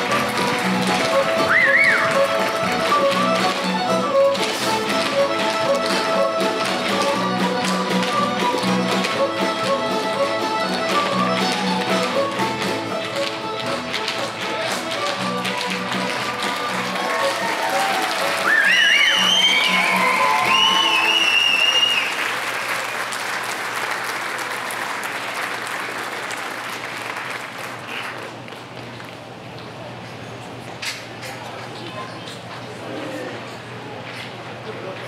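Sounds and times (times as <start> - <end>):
fiddles and guitar playing folk tune: 0.0 - 21.5
dancers tapping feet: 0.0 - 21.6
applause: 15.4 - 28.7
crowd whooping: 16.8 - 22.4.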